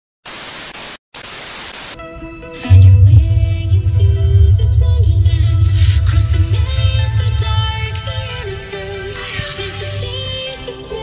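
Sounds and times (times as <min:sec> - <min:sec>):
tv static hiss: 0:00.2 - 0:02.0.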